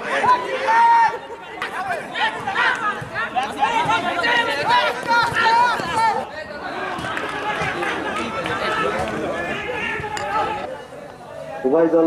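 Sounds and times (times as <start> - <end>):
crowd shouting and chattering: 0.0 - 12.0.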